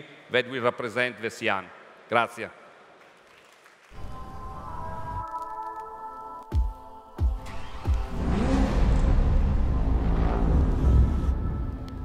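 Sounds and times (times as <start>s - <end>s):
car engine rumble: 7.4s - 12.0s.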